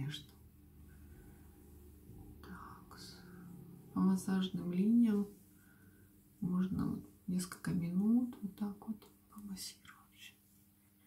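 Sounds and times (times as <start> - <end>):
low hum: 0.0 - 9.8
soft breathy sound: 0.6 - 6.5.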